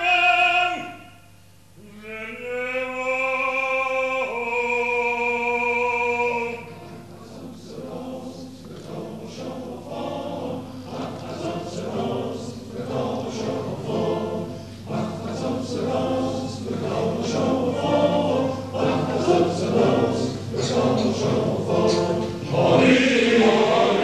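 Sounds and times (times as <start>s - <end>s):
male choir singing: 1.8s - 24.0s.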